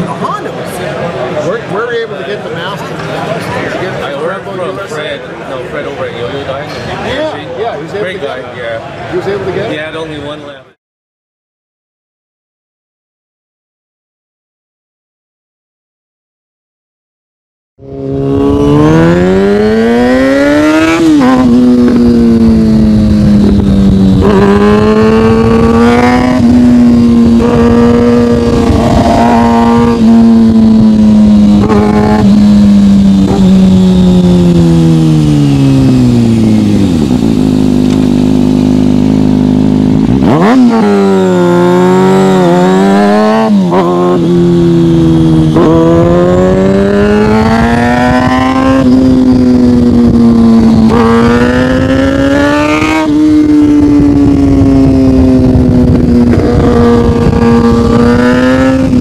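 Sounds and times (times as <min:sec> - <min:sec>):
road and wind rumble: 0:00.0 - 0:10.8, 0:17.8 - 0:59.0
motorcycle engine revving: 0:17.8 - 0:59.0.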